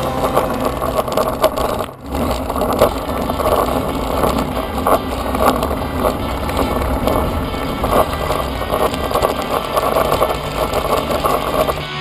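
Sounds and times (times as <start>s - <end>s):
bicycle road noise: 0.0s - 12.0s
wind rushing over microphone: 0.0s - 12.0s.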